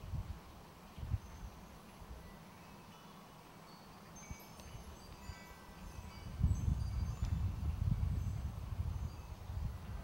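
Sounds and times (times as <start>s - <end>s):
wind rumble on microphone: 0.0s - 2.3s, 4.2s - 10.0s
wind chimes tinkling: 1.0s - 10.0s.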